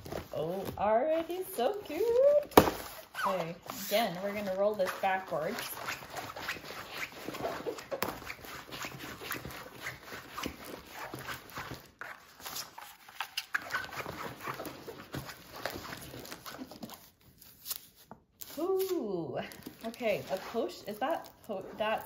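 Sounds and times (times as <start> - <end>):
plastic crinkling rustles: 0.0 - 22.0.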